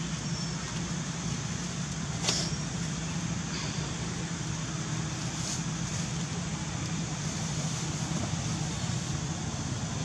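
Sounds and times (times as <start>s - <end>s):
faint hiss: 0.0s - 10.0s
low background rumble: 0.0s - 10.0s.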